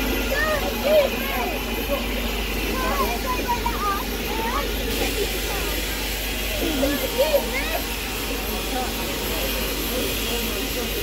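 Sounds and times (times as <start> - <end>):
indistinct voices: 0.0 - 11.0
steam locomotive hissing: 0.0 - 11.0.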